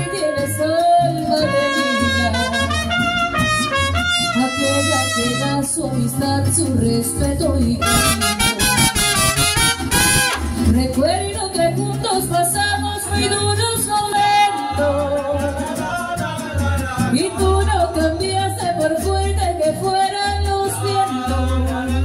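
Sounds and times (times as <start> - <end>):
trumpets playing melody: 0.0 - 5.8, 7.8 - 10.7
mariachi band playing: 0.0 - 22.0
deep bass notes: 0.5 - 14.0.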